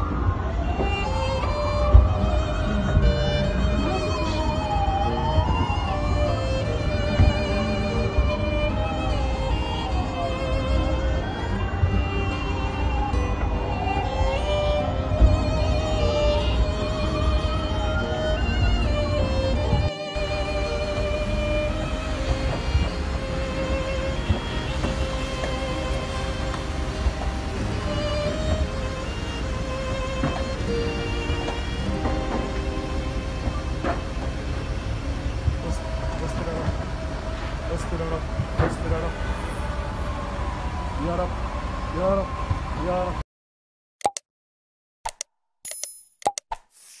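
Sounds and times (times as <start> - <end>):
wavering string note: 0.0 - 36.7.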